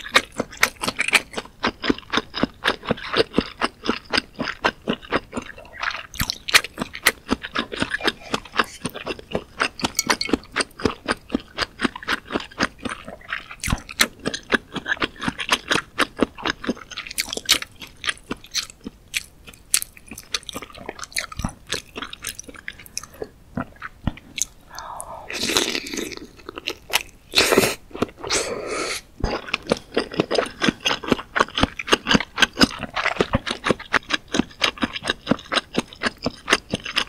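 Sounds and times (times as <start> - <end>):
close-miked chewing: 0.0 - 37.0.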